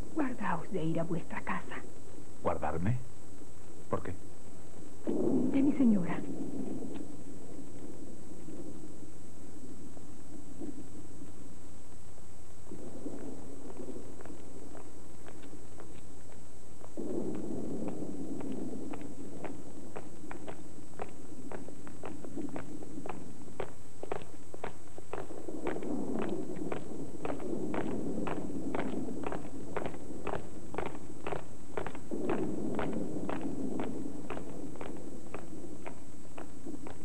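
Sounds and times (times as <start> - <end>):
soldiers marching on cobblestones: 14.2 - 37.0.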